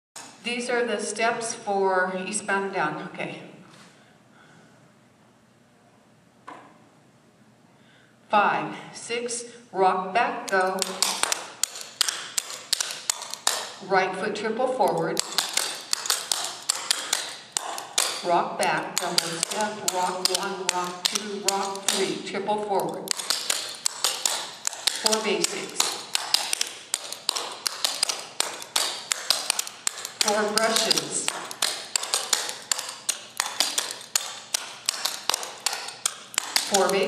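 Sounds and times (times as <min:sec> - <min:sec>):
clogging taps on hardwood floor: 0:23.1 - 0:37.0.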